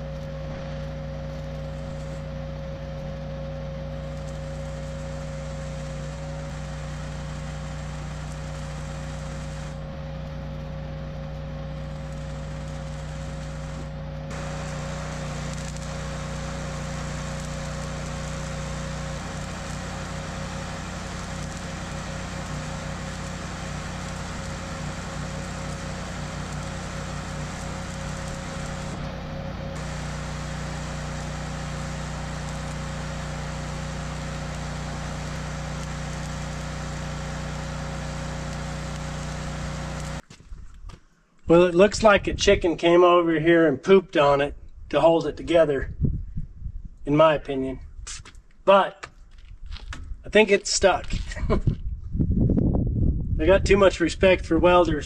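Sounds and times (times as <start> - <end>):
engine drone: 0.0 - 40.2
welding arc crackling hiss: 0.0 - 40.2.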